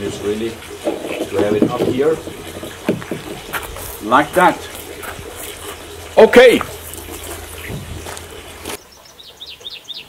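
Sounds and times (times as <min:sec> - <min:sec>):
footsteps on gravel: 0:00.8 - 0:08.8.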